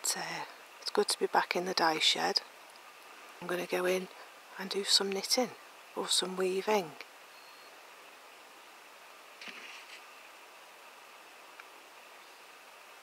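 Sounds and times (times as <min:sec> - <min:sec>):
faint hiss: 0:00.0 - 0:13.0.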